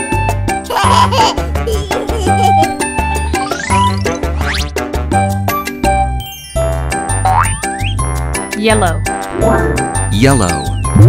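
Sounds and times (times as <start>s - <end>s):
bouncy children's music: 0.0s - 11.0s
cartoon boing sound effect: 7.3s - 7.7s.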